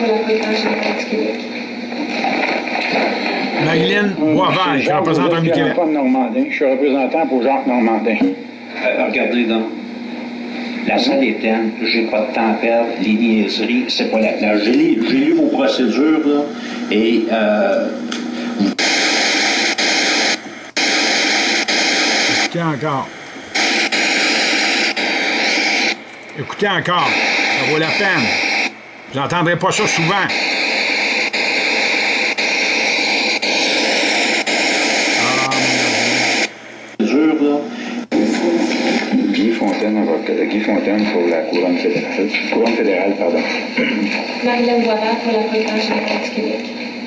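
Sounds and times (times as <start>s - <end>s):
loud static hiss bursts: 0.0s - 5.8s, 17.8s - 47.0s
voice speaking on recording: 3.6s - 5.9s, 22.2s - 23.2s, 26.3s - 28.4s, 29.1s - 30.4s
person saying euh: 35.2s - 36.3s.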